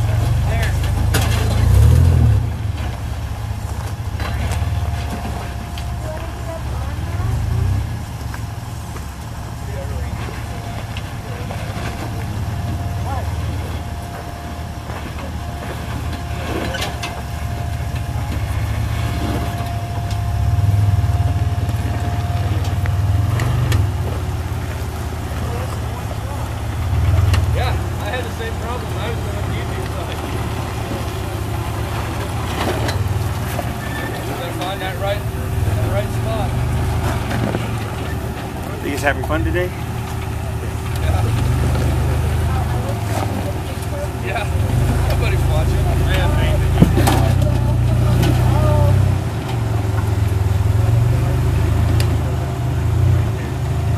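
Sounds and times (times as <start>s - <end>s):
truck engine running low: 0.0s - 53.9s
thin steady whine: 2.6s - 50.9s.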